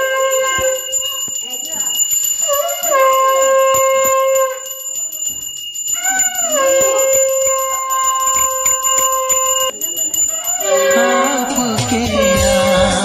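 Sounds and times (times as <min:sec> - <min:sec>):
conch shell blown: 0:00.0 - 0:00.9
voices talking: 0:00.0 - 0:04.4, 0:09.1 - 0:13.0.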